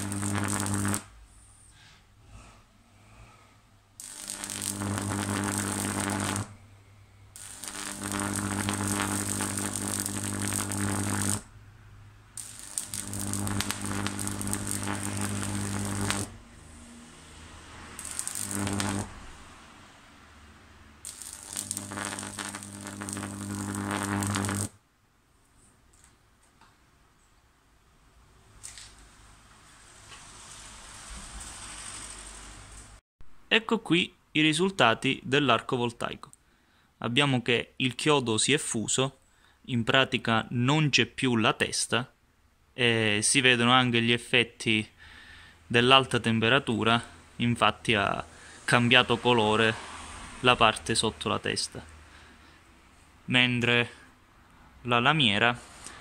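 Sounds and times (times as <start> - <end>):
electric arc buzzing and crackling: 0.0 - 1.2, 4.0 - 6.6, 7.3 - 11.5, 12.3 - 16.8, 18.0 - 19.5, 21.0 - 24.8.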